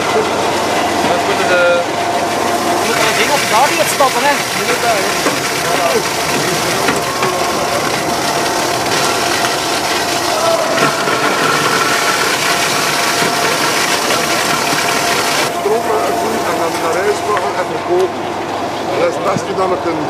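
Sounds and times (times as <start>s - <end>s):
indistinct crowd chatter: 0.0s - 20.0s
machine hum: 0.0s - 20.0s.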